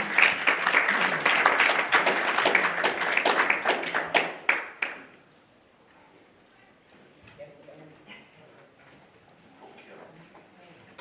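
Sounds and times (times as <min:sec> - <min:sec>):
congregation applauding: 0:00.0 - 0:05.2.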